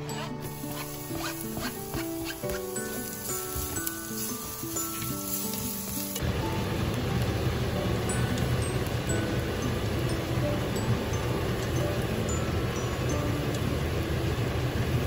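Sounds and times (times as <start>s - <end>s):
music with held notes: 0.0s - 15.0s
garlic sizzling in hot oil: 0.4s - 15.0s.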